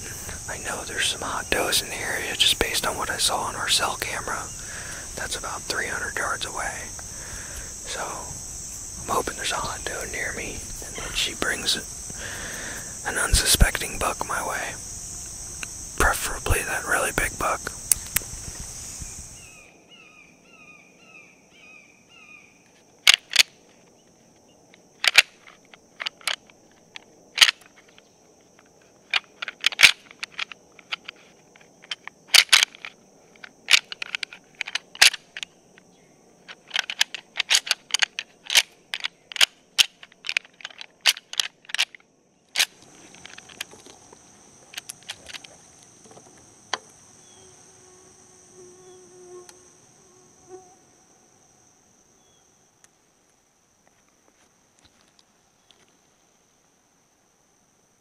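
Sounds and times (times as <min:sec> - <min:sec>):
high insect buzz: 0:00.0 - 0:58.0
sharp clicks: 0:25.0 - 0:28.0, 0:31.8 - 0:35.5.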